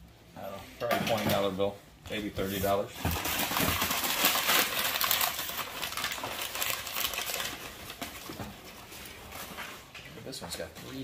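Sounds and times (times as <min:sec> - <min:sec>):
packing paper rustling and crinkling: 0:02.2 - 0:11.0.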